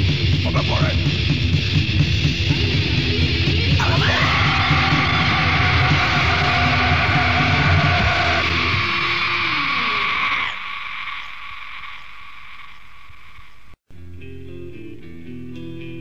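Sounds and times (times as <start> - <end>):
heavy metal band playing: 0.0 - 10.7.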